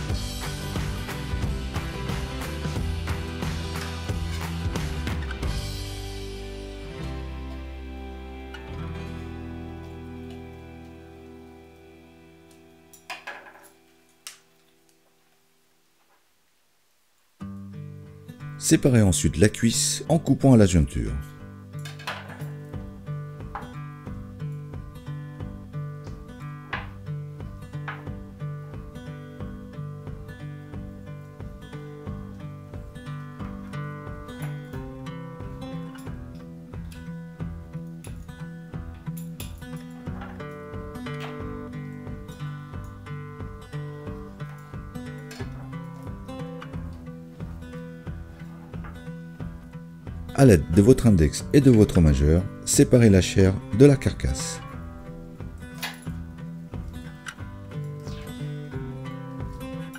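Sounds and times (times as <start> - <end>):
strummed acoustic guitar: 0.0 - 13.9, 17.4 - 19.4, 20.1 - 59.9.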